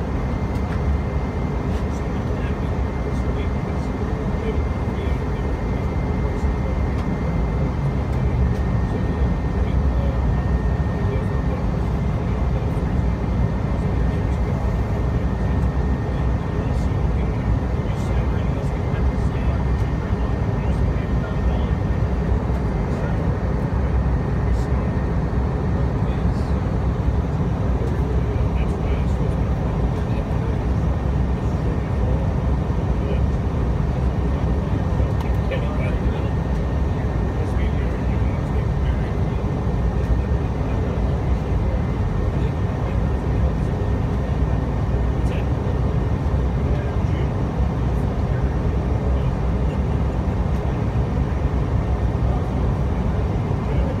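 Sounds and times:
airliner cabin roar: 0.0 - 54.0
thin steady whine: 0.0 - 54.0.

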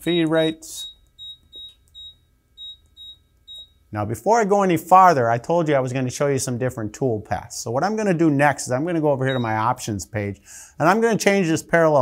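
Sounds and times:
keypad beeping: 0.3 - 3.8, 9.3 - 9.6.

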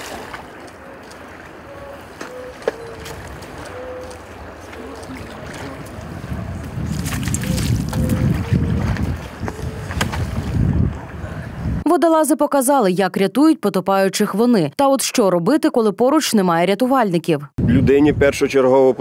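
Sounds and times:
water sloshing: 0.0 - 10.6
wind rumbling on microphone: 0.0 - 11.9, 17.6 - 19.0.

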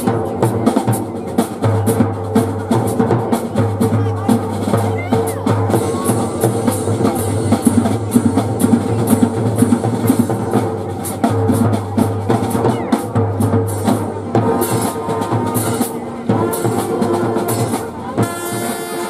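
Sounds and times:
drumline playing snare and bass drums: 0.0 - 19.0.

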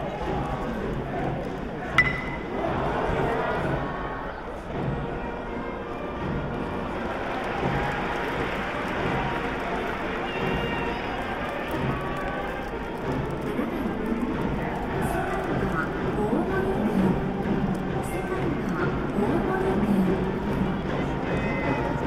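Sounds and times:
music from the stands: 0.0 - 22.0
stadium crowd voices: 0.0 - 22.0.

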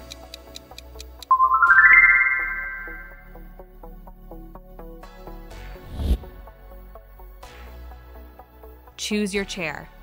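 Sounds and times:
light background music: 0.0 - 10.0
countdown timer ticking: 1.0 - 3.3
rising chime: 1.3 - 3.2.

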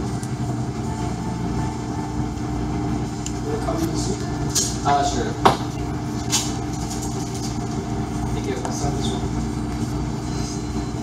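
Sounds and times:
low mechanical hum with tones: 0.0 - 11.0.

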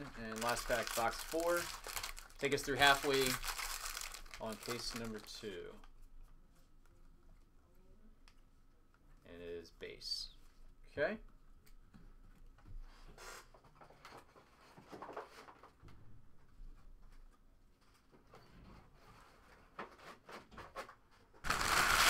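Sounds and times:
foil wrappers crinkling: 0.0 - 5.5, 21.5 - 22.0.

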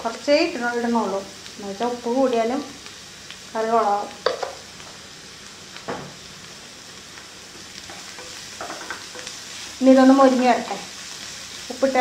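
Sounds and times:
onions sizzling in hot oil: 0.0 - 12.0.

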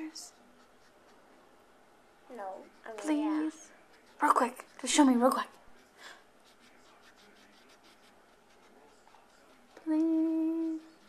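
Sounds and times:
marker scratching on paper: 0.0 - 1.2, 2.9 - 11.0.

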